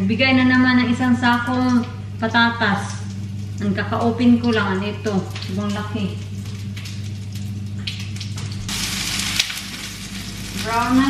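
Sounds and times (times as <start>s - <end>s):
food sizzling in a frying pan: 8.4s - 11.0s.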